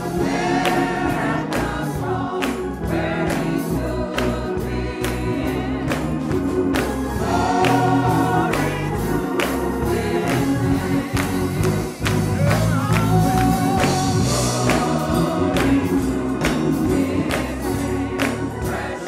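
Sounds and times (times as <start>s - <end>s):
gospel choir singing: 0.0s - 19.0s
handclaps marking the beat: 0.1s - 19.0s.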